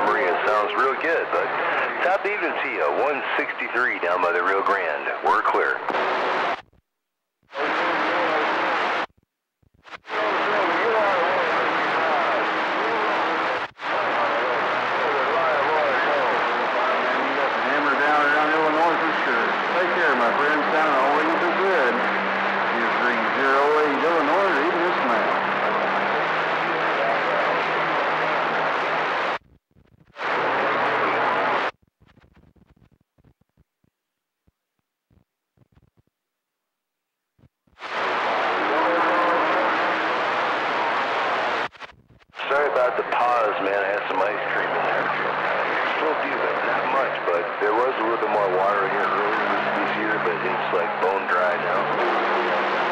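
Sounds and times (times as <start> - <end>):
faint warbling radio voices: 0.0 - 6.3, 7.5 - 9.1, 10.0 - 29.4, 37.8 - 41.7, 42.4 - 52.9
radio static: 0.0 - 6.8, 7.5 - 33.6, 37.4 - 52.9.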